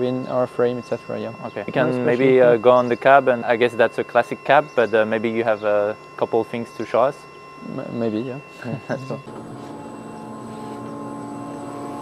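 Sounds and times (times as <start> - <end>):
electric tractor whining hum: 0.0 - 12.0.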